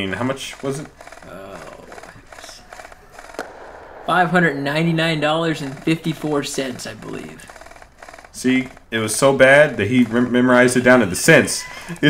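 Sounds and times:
distant airsoft gunfire pops: 0:02.7 - 0:06.7
sharp click: 0:03.2 - 0:08.1.

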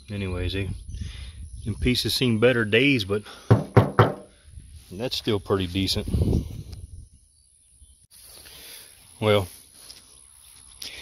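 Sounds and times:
insects chirring: 0:07.1 - 0:11.0.

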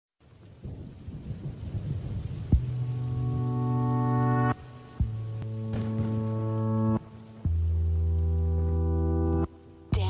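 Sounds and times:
rain: 0:00.2 - 0:10.0
low rolling thunder: 0:00.3 - 0:04.3.

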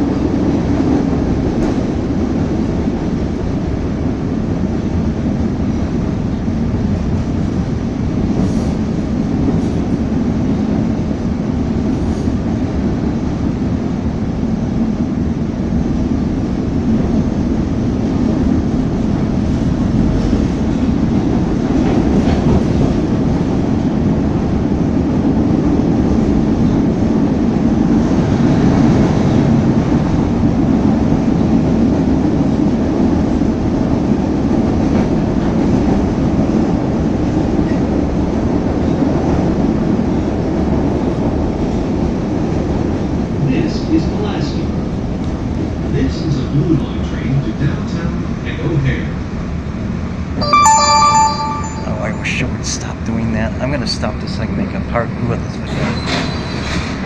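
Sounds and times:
train wheels rumbling on rail: 0:00.0 - 0:50.3, 0:52.3 - 0:57.0.

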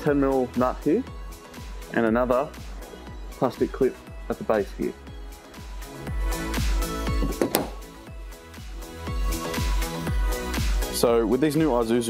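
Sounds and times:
music with deep bass line: 0:00.0 - 0:12.0.

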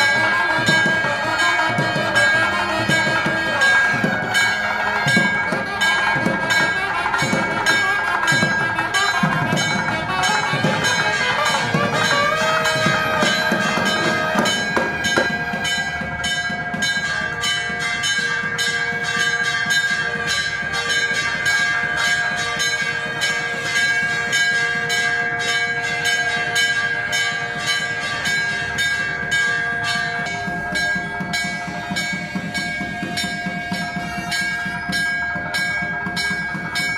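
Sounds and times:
temple bells clanging: 0:00.0 - 0:36.9.

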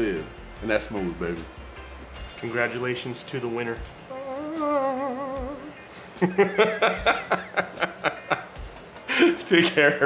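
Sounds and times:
person humming with vibrato: 0:04.1 - 0:05.9.

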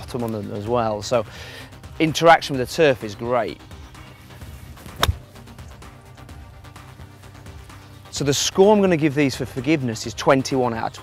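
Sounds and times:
background music: 0:00.0 - 0:11.0
golf club striking ball: 0:04.8 - 0:05.4.

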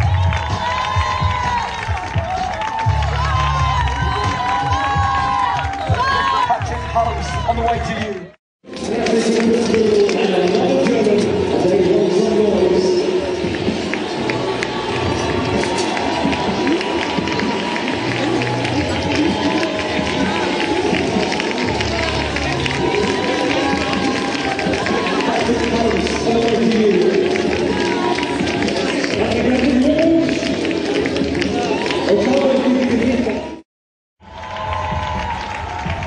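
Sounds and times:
crowd clapping: 0:00.0 - 0:33.6, 0:34.2 - 0:36.0
music: 0:00.0 - 0:33.6, 0:34.2 - 0:36.0
crowd voices: 0:05.6 - 0:33.6.

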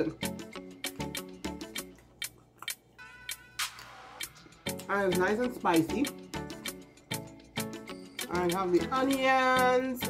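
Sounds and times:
faint background music: 0:00.0 - 0:10.0
mouth clicks while eating: 0:01.6 - 0:03.0.

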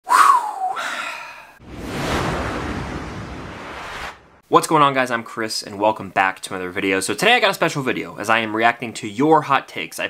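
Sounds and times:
rushing whoosh: 0:01.6 - 0:04.4.

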